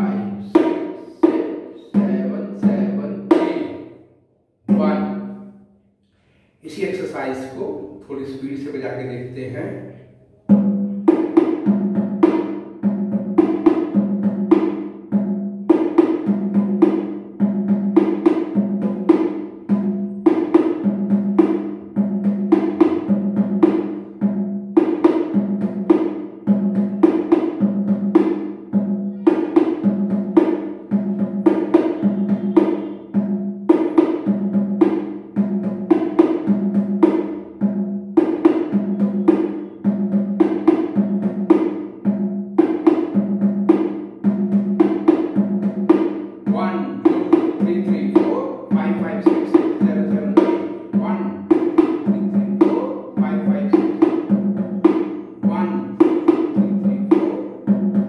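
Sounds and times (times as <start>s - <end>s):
bongo drums played by hand: 0.0s - 4.0s, 10.5s - 58.0s.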